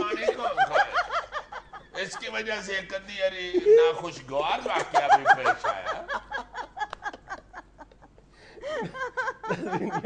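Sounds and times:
person laughing: 8.6s - 10.0s.

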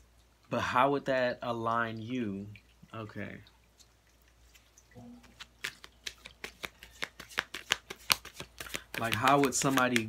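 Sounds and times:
cards being shuffled: 5.2s - 10.0s.

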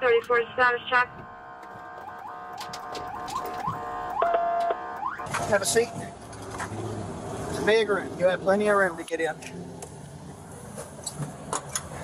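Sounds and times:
police car siren: 0.0s - 6.3s.

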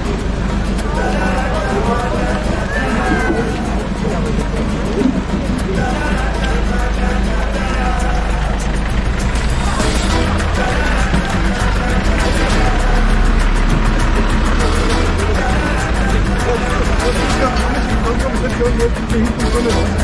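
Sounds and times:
crowd chatter: 0.0s - 20.0s
music playing: 0.0s - 20.0s
van engine rumbling: 0.0s - 20.0s.

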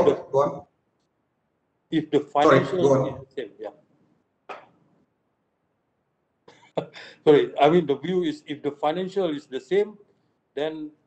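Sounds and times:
man saying yeah: 0.0s - 0.6s, 2.0s - 3.7s, 6.8s - 9.9s, 10.6s - 10.9s.

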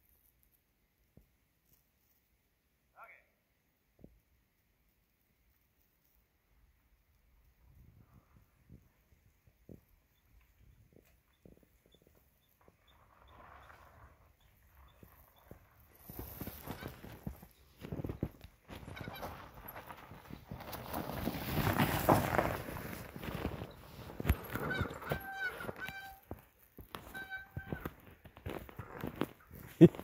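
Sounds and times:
bike tyres crunching over snow: 4.7s - 30.0s.

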